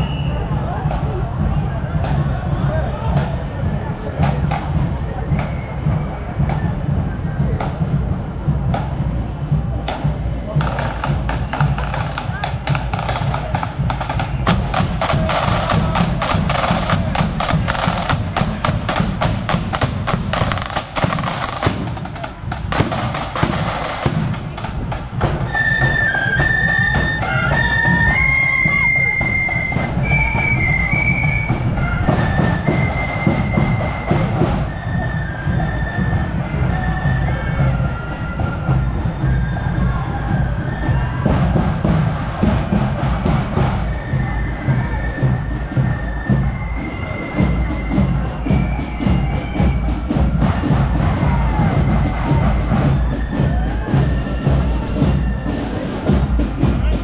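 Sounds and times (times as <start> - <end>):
bass drum beat: 0.0 - 46.6, 47.3 - 57.0
marching band snare drum rolls: 0.0 - 57.0
high flutes playing a tune: 10.6 - 57.0.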